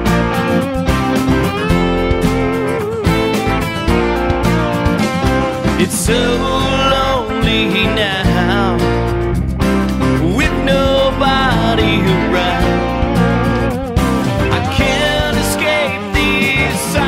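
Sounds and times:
guitar: 0.0 - 17.0
low bass line: 0.0 - 17.0
man singing: 5.6 - 9.2, 10.1 - 17.0.

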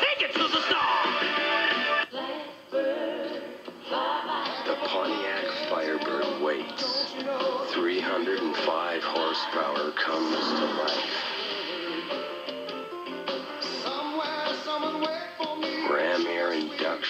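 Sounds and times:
melodic music: 0.2 - 2.1, 4.9 - 16.8.

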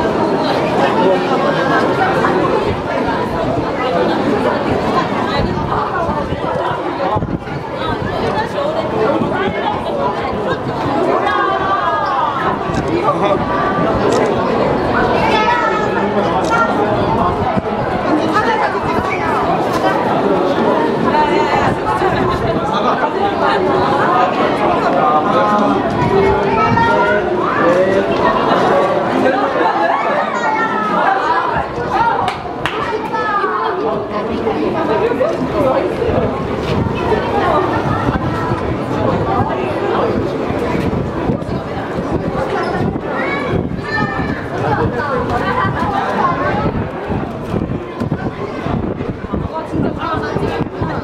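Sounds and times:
chatter of many people: 0.0 - 51.0.

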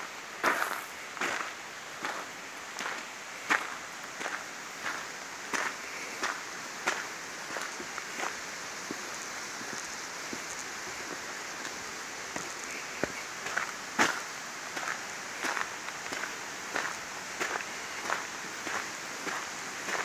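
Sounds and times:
steady background hiss: 0.0 - 20.0
footsteps on woodland path: 0.4 - 20.0.

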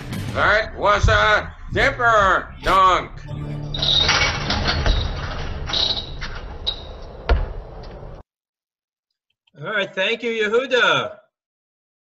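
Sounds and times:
basketball bouncing: 7.2 - 8.2.

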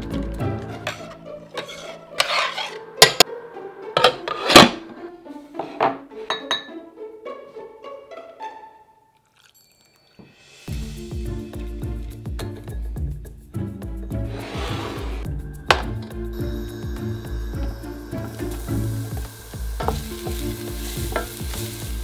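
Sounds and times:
soft background music: 0.0 - 9.2, 10.4 - 22.0
ceramic bowl and utensils clinking: 6.3 - 6.7, 12.4 - 13.0, 21.0 - 21.5.

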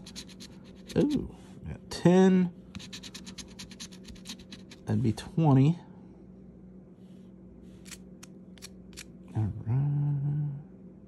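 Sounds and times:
coin scraping scratch card: 0.0 - 1.2, 2.7 - 4.9.

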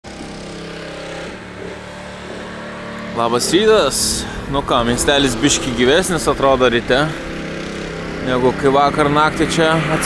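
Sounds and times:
car engine running: 0.1 - 10.0
steady rushing noise: 2.3 - 10.0.

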